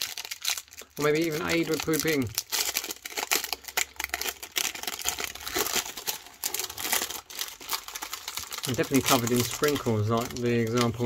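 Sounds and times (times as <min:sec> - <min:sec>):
snack wrapper crinkling and tearing: 0:00.0 - 0:11.0.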